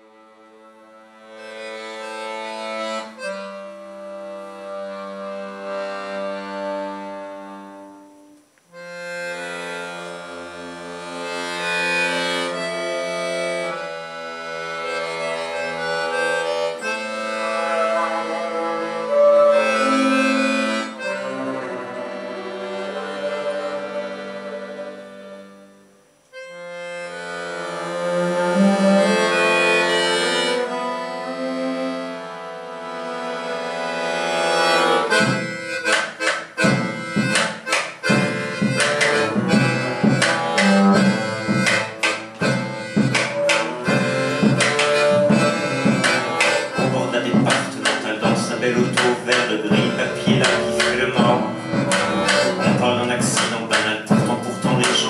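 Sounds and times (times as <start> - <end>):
accordion playing chords: 0.0 - 55.0
bowed double bass: 8.8 - 25.6, 26.6 - 55.0.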